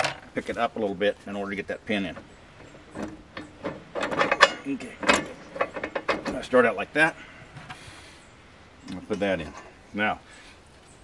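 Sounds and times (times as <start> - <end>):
metal knocks and scrapes: 2.0 - 6.6.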